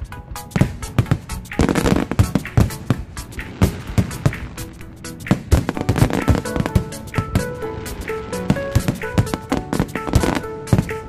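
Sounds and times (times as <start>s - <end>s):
music playing: 0.0s - 11.0s
firework shells bursting: 0.3s - 11.0s.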